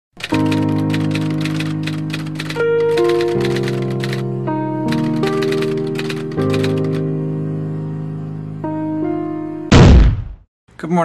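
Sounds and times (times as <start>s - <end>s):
typewriter keys clacking: 0.2s - 4.2s, 4.9s - 7.0s
music of sustained chords: 0.3s - 9.7s.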